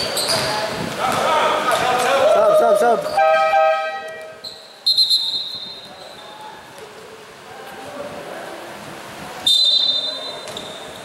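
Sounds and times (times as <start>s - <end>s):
basketball game background noise: 0.0s - 11.0s
referee's whistle blasts: 3.1s - 6.3s, 9.5s - 10.9s.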